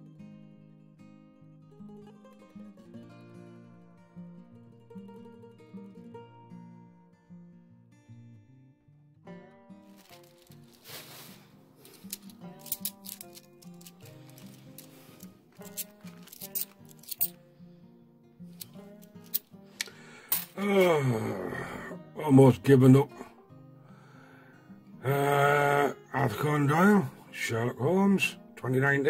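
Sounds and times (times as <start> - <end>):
soft guitar music: 0.0 - 29.0
coins clinking: 9.9 - 17.4, 18.5 - 20.6.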